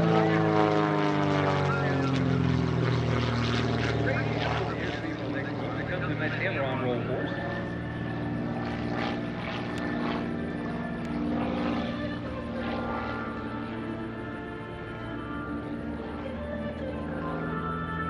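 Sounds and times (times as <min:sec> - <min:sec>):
propeller plane engine droning: 0:00.0 - 0:18.0.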